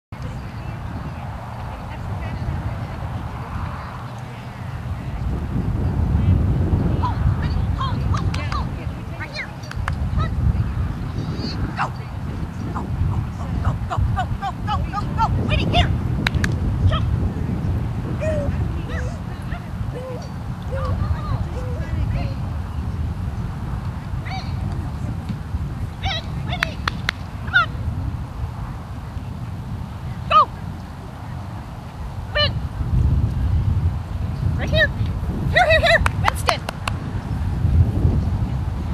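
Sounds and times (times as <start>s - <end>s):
steady low rumble: 0.2s - 38.9s.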